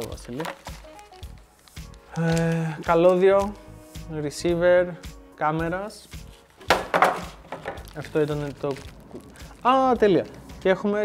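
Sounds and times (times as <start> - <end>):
plastic packaging crinkling: 0.0 - 3.3, 6.4 - 10.8.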